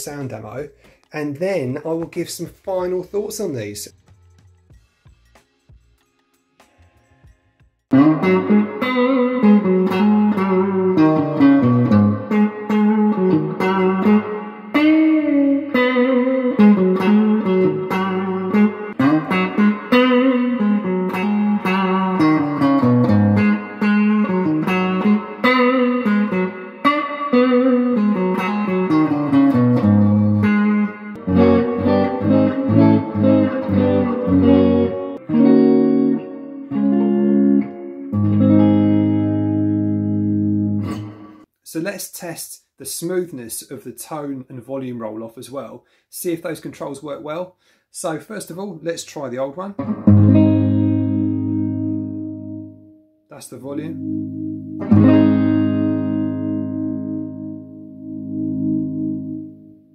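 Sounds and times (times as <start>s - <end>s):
electric guitar playing: 7.9s - 41.5s, 49.8s - 59.9s.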